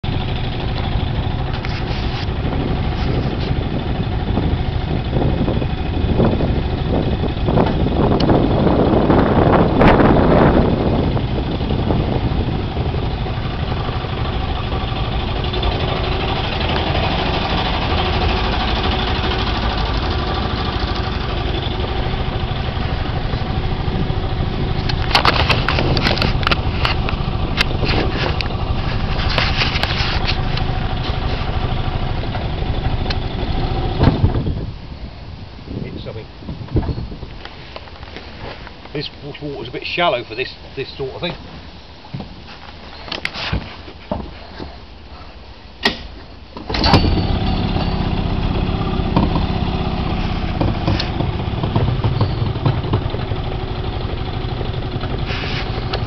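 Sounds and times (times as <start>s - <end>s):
outboard motor running: 0.0s - 35.9s, 46.6s - 56.0s
sharp clicks and knocks: 24.8s - 28.6s, 49.0s - 56.0s.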